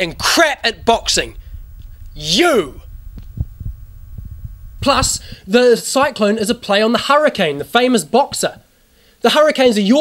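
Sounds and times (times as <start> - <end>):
low rumble: 0.0 - 5.5
soft thumps: 2.8 - 5.4.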